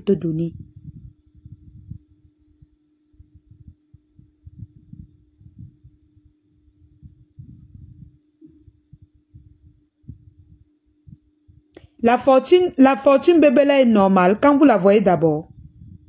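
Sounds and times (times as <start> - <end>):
steady low hum: 0.0 - 16.0
low thumps and rumble: 0.5 - 11.7, 15.4 - 16.0.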